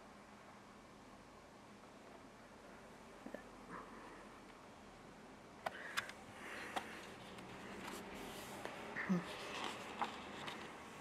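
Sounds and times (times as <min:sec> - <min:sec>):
book pages rustling: 0:06.0 - 0:11.0.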